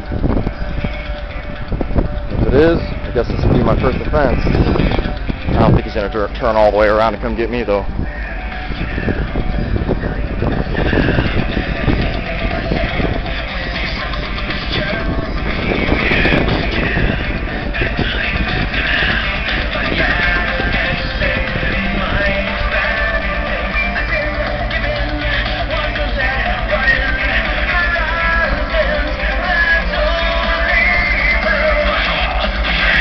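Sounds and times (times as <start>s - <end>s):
loud rock music from car stereo: 0.0s - 33.0s.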